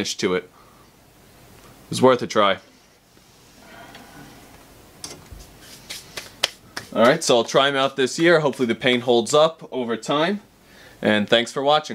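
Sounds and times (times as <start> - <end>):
hands brushed together: 5.2 - 8.6.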